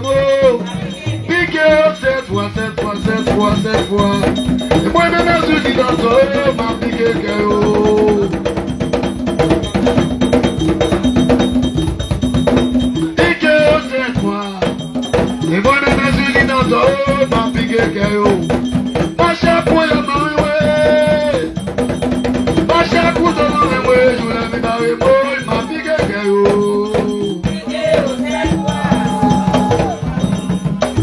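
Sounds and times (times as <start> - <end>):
people singing: 0.0 - 8.6, 13.0 - 18.5, 19.2 - 21.6, 22.7 - 31.0
hand drums fast rhythm: 0.0 - 31.0.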